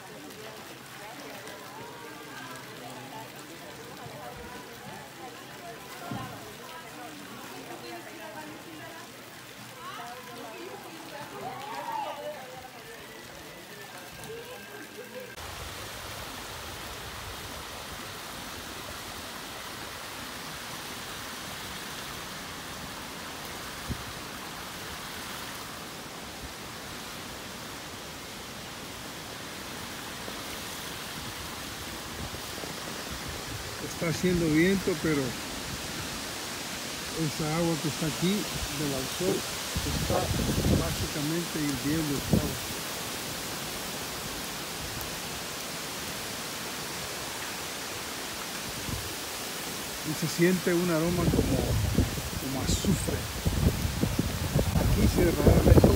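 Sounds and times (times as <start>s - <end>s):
faint distant voices: 0.0s - 15.4s
hot-spring water hissing: 0.0s - 55.9s
wind: 0.0s - 55.9s.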